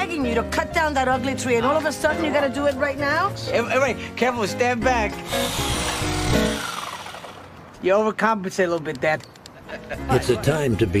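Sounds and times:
chainsaw cutting wood: 0:05.2 - 0:07.7.

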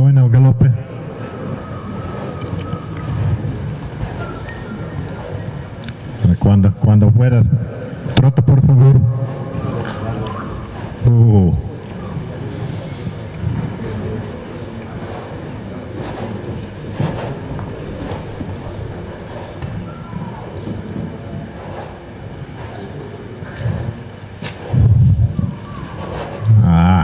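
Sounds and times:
people talking in background: 0:00.7 - 0:06.5, 0:07.1 - 0:27.0
loud voice: 0:26.5 - 0:27.0.

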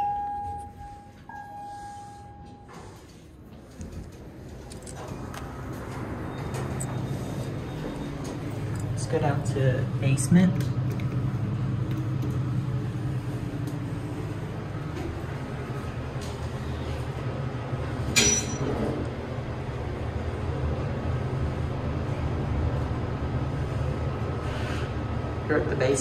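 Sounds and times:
elevator ride rumble: 0:00.0 - 0:26.0.

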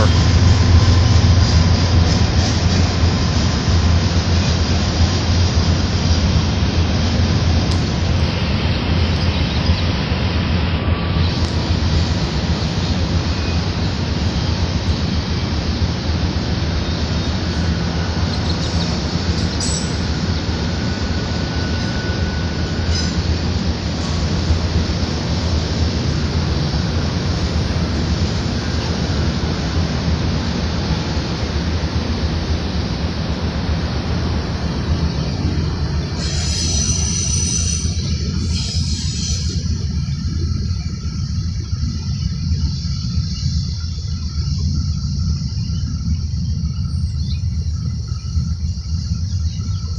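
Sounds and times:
freight train wheels rumbling: 0:00.0 - 0:49.9.

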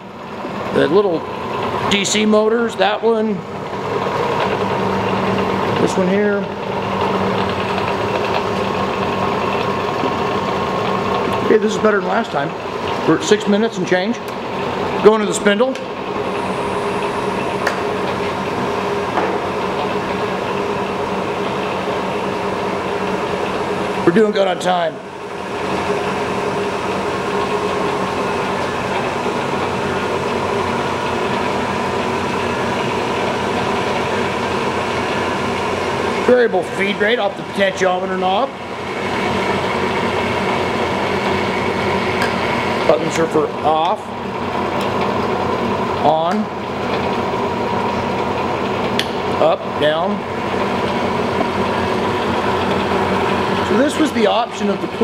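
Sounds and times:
milling machine humming and whining: 0:00.0 - 0:55.0.

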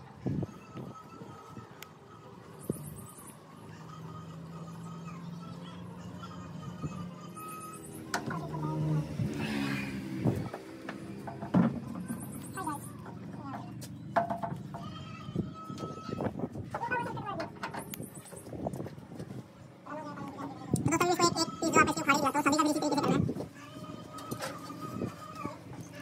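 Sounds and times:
indistinct background talk: 0:00.0 - 0:09.3
faint music: 0:00.0 - 0:26.0.

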